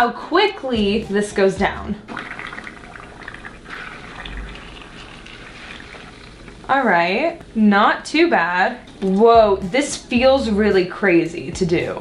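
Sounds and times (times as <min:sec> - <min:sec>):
foam dissolving with hiss and crackles: 0:03.4 - 0:06.7.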